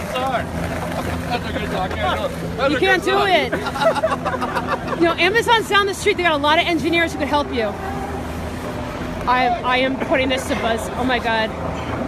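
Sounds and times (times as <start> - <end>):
low hum of traffic: 0.0 - 12.0
voices: 0.0 - 12.0.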